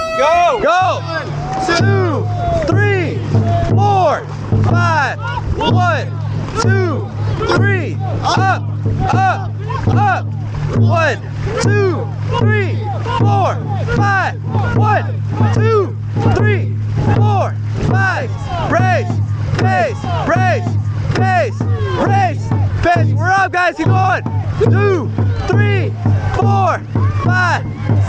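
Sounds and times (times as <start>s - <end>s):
crew shouting rhythmic calls: 0.0s - 1.8s, 5.2s - 28.0s.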